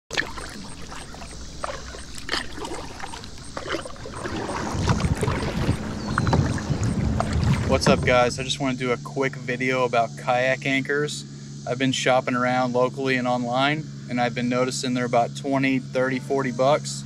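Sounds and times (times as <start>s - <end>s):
small splashes and drips: 0.1s - 7.8s
water lapping against plastic hull: 0.1s - 9.0s.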